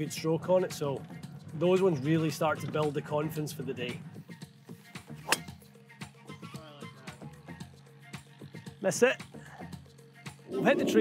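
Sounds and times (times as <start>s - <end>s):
background music: 0.0s - 11.0s
golf club striking ball: 5.2s - 5.6s.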